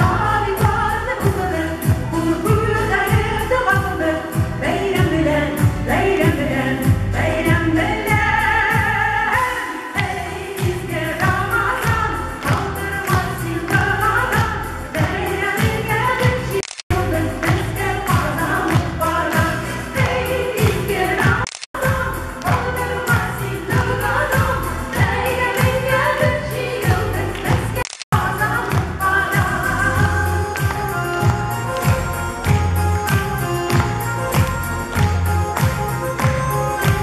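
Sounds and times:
female group singing in unison: 0:00.0 - 0:30.2
musical accompaniment with steady beat: 0:00.0 - 0:37.0.

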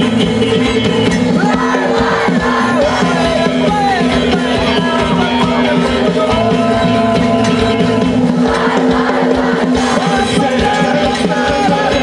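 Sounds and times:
live band playing: 0:00.0 - 0:12.0
steady drum beat: 0:00.0 - 0:12.0
choir singing folk song: 0:01.4 - 0:12.0.

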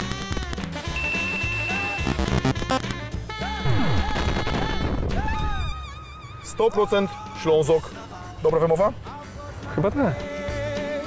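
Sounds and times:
beeping sound effects: 0:01.0 - 0:02.4.

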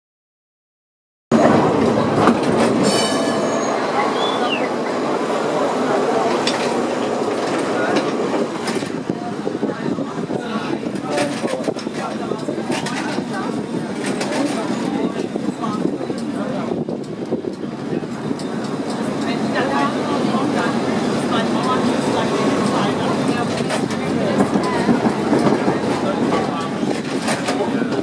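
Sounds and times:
people's voices: 0:01.3 - 0:28.0
tram rolling rumble on rails: 0:01.3 - 0:28.0.

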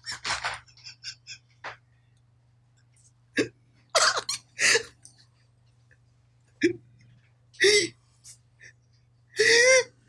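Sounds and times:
man laughing: 0:00.0 - 0:01.5.

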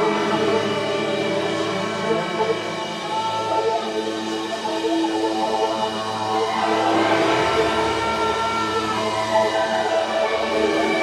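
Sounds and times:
electric guitars and keyboard drone: 0:00.0 - 0:11.0.

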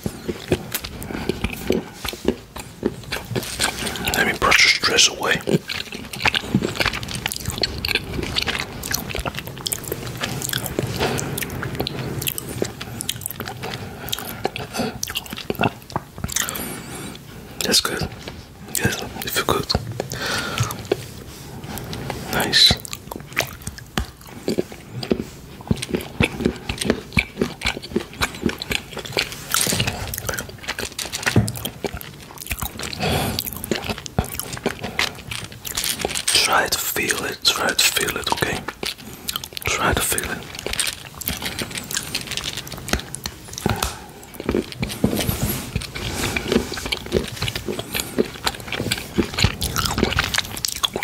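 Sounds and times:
close chewing: 0:00.0 - 0:51.0
wet mouth clicks: 0:00.0 - 0:51.0
brush rustling on microphone: 0:44.9 - 0:47.7.

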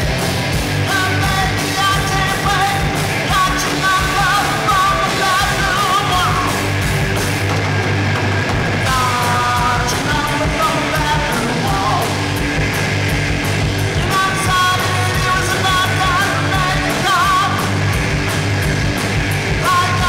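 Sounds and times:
bass guitar: 0:00.0 - 0:20.0
distorted electric guitars: 0:00.0 - 0:20.0
drum kit: 0:00.0 - 0:20.0.

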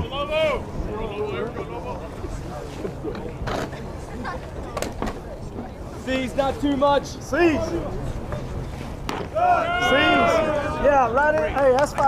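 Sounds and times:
people shouting and chattering: 0:00.0 - 0:12.0.

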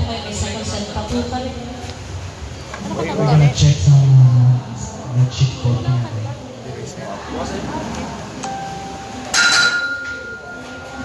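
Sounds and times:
high ringing tone: 0:08.4 - 0:11.0
sharp clink: 0:09.3 - 0:10.6.

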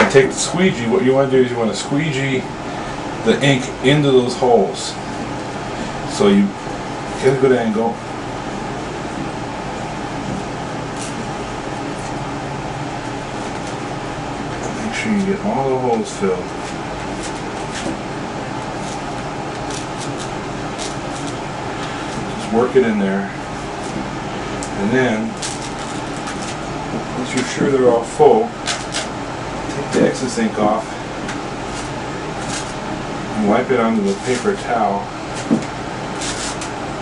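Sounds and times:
fan rushing noise: 0:00.0 - 0:37.0
squeegee scraping: 0:16.1 - 0:27.7, 0:28.5 - 0:32.9, 0:33.7 - 0:36.9
squeegee scraping a board: 0:35.3 - 0:36.7.

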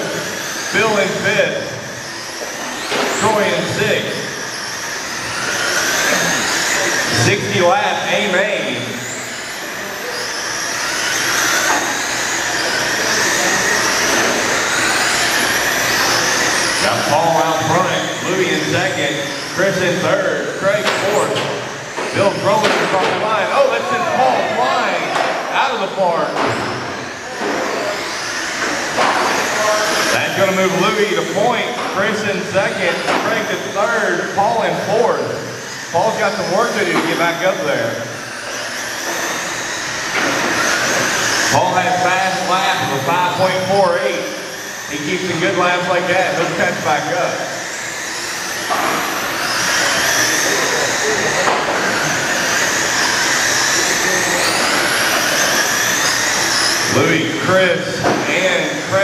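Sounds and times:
radio-controlled trucks motors whining: 0:00.0 - 0:59.0.

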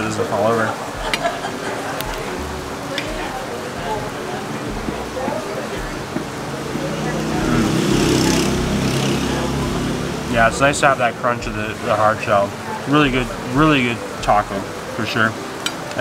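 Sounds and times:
murmur of voices: 0:00.0 - 0:16.0
vehicle passing: 0:00.0 - 0:16.0.

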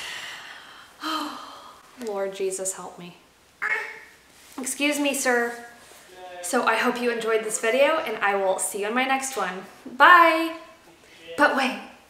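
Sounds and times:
woman sighing: 0:00.0 - 0:01.8.

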